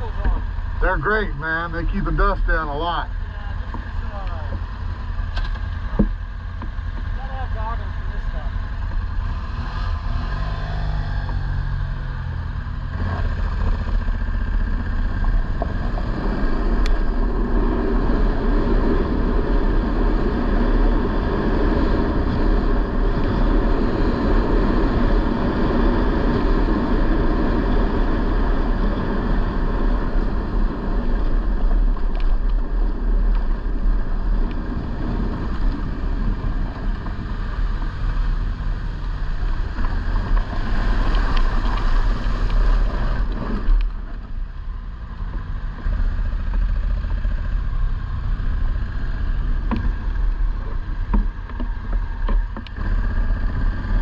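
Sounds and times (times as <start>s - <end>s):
road and wind noise: 0.0s - 54.0s
vehicle engine rumble: 0.0s - 54.0s.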